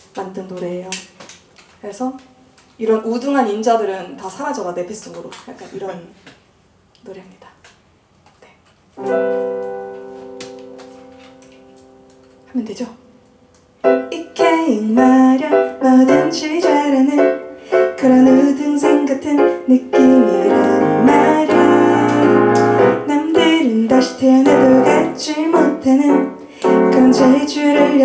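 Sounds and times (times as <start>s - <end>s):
slow piano ballad: 9.0s - 12.5s, 13.8s - 28.0s.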